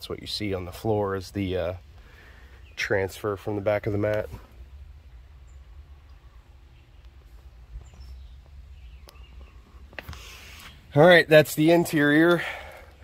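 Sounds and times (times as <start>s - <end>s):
steady low rumble: 0.0s - 10.0s
faint bird chirps: 5.1s - 11.0s.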